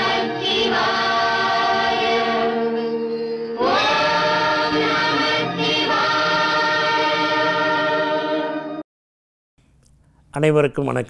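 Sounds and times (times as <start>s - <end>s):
choir singing sustained notes: 0.0s - 8.8s.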